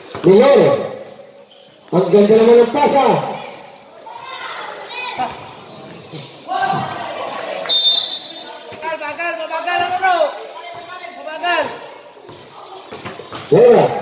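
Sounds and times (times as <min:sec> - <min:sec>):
basketball bouncing on court: 0:12.2 - 0:13.6.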